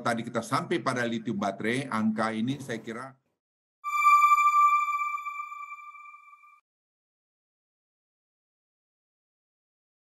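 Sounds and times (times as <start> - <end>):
electronic chime tone: 3.8 - 6.6.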